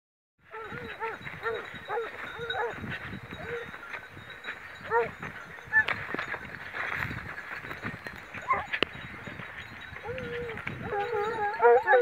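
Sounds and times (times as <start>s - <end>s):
hunting dogs yelping: 0.5s - 3.8s, 4.8s - 5.9s, 8.4s - 8.8s, 10.0s - 12.0s.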